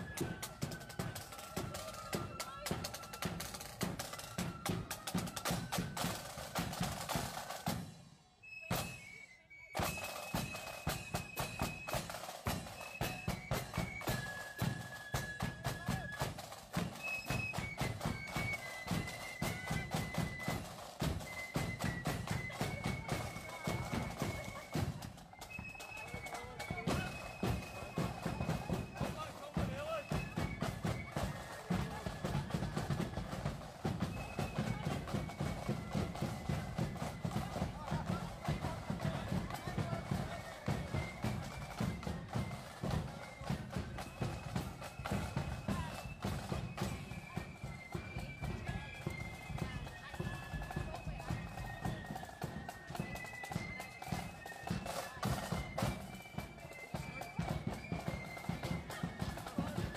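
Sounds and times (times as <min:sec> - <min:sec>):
drums beating: 0:00.0 - 0:09.1, 0:09.8 - 0:59.9
marching band melody: 0:00.0 - 0:59.9.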